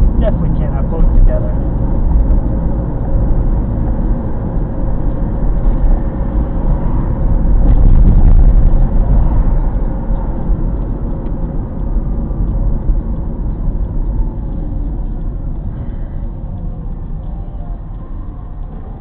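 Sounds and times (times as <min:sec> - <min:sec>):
car engine and tyres rumbling: 0:00.0 - 0:19.0.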